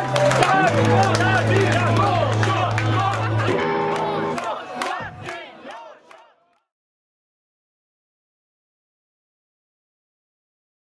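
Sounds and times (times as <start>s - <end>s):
concert crowd cheering and shouting: 0.0s - 6.4s.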